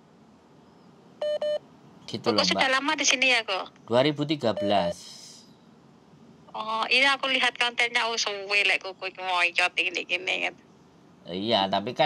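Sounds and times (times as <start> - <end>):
short electronic beeps: 1.2 - 1.6.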